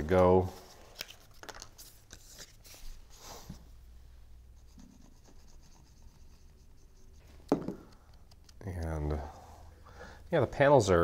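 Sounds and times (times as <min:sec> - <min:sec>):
paper rubbing and rustling: 0:00.5 - 0:03.0.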